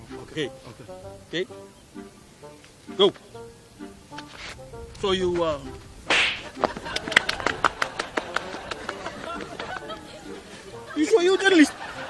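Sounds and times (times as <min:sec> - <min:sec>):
sharp arm swish: 0:06.1 - 0:06.6.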